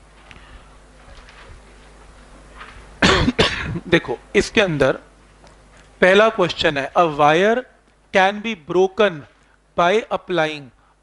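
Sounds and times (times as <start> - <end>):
quiet room noise: 0.0 - 11.0
man coughing: 3.0 - 3.9.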